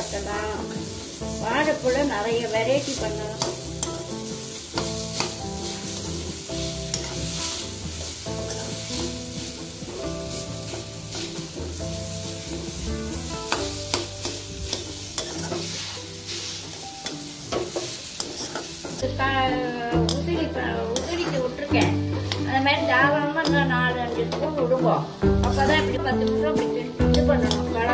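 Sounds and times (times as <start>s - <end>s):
light sizzle: 0.0s - 27.9s
ladle scraping food in pan: 2.8s - 19.1s
ladle clicking against pan: 3.3s - 6.0s, 6.9s - 7.4s, 13.4s - 15.9s, 20.0s - 22.5s
steady low held tones: 19.0s - 27.9s.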